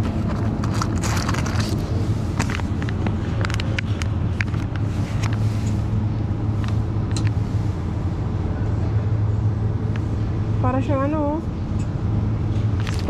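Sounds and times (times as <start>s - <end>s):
refrigerated cases humming: 0.0s - 13.0s
plastic pack crinkling: 0.2s - 2.8s.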